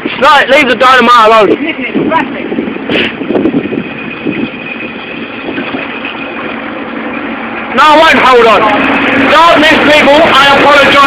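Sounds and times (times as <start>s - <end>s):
ride in motion: 0.0s - 11.0s
running water: 0.0s - 11.0s.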